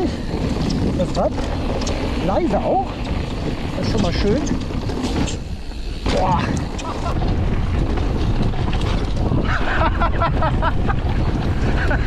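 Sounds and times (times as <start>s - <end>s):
small rattles: 0.0s - 9.8s
bike tyre rumble on dirt: 0.0s - 12.0s
wind rushing over microphone: 0.0s - 12.0s.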